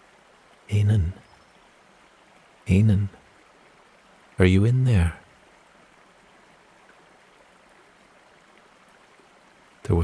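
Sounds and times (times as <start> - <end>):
running water rushing: 0.0 - 10.0
man's voice: 0.7 - 1.2, 2.7 - 3.2, 4.4 - 5.2.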